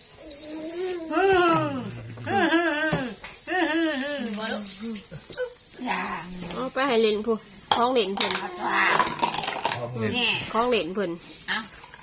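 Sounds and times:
woman crooning: 0.6 - 6.4.

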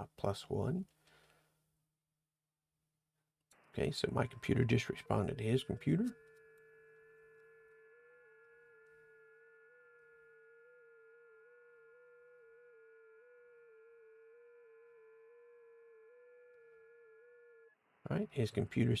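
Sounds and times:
faint tone hopping in pitch: 3.6 - 19.0.

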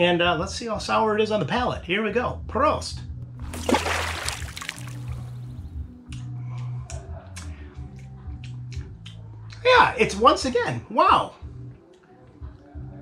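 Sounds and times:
soft background music: 0.0 - 13.0.

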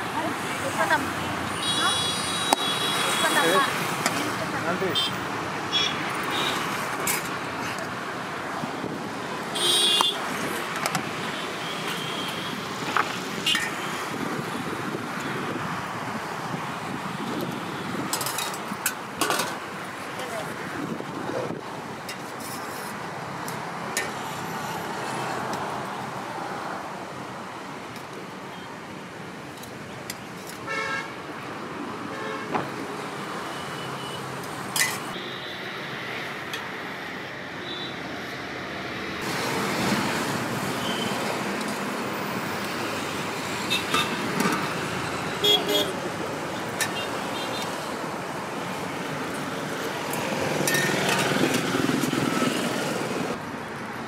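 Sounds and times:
roadside traffic: 0.0 - 54.0.

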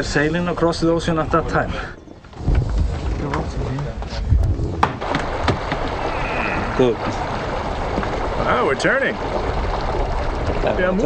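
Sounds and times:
rumble of wind and water: 0.0 - 11.0
knocks and clatter on wooden ship: 2.0 - 6.2.

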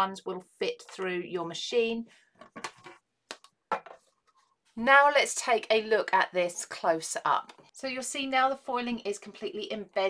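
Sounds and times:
plastic plates tapping and scraping: 2.4 - 4.2.

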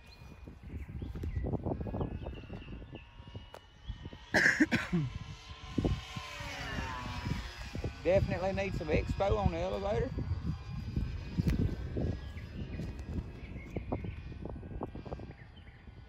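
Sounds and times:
rc airplane motor whining: 0.0 - 16.0
wind rumbling on microphone: 0.0 - 16.0.

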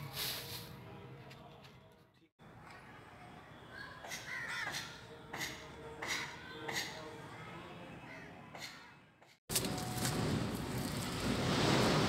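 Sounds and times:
crow cawing: 4.1 - 5.0.

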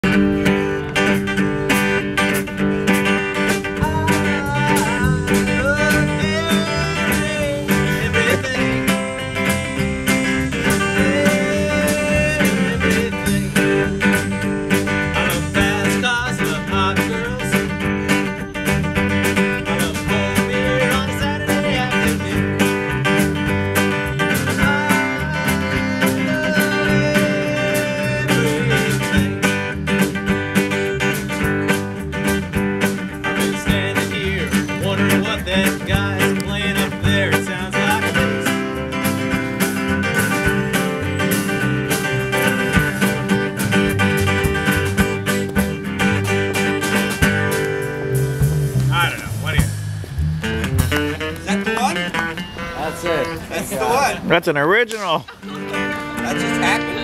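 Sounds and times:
drum kit beat: 0.0 - 53.4
strummed acoustic guitar: 0.0 - 54.4, 55.2 - 57.0
wavering bending melody line: 37.6 - 53.7.

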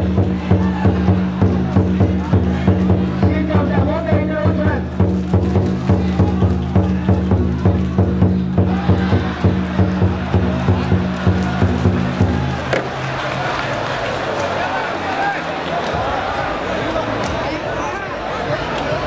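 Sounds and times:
music with steady beat: 0.0 - 13.3
crowd chatter: 0.0 - 19.0.

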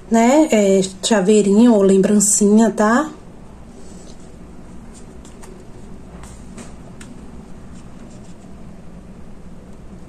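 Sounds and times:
steady low hum: 0.0 - 10.0
soft rustling: 3.7 - 8.7.

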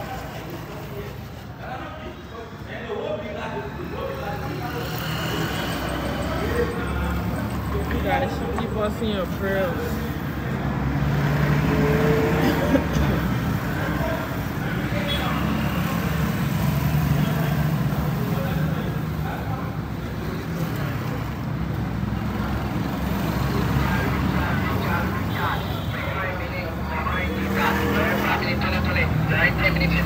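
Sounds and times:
faint voices: 0.0 - 30.0
street noise: 0.0 - 30.0.

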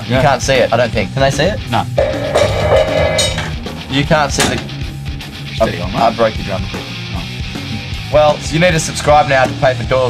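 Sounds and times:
gong ringing: 2.0 - 6.0.

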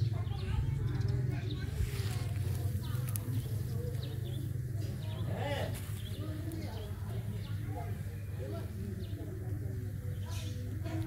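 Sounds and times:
indistinct voices: 0.0 - 11.0
small birds chirping: 0.0 - 11.0
steady low hum: 0.0 - 11.0.

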